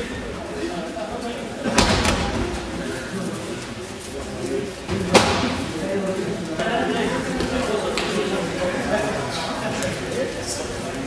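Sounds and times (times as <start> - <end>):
overlapping voices in echoing hall: 0.0 - 11.0.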